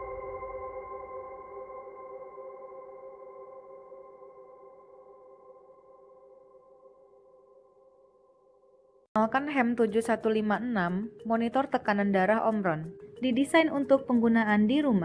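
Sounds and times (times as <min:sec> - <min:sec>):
held synthesizer chord: 0:00.0 - 0:09.1.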